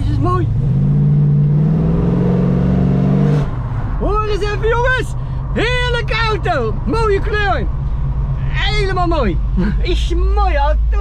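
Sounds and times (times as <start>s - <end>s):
car engine revving: 0.0s - 11.0s.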